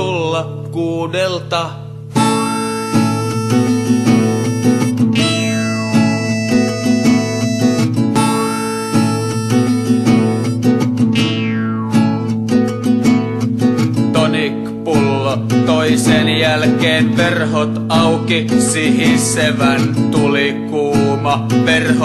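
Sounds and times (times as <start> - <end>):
folk-rock band playing: 2.2 - 11.2.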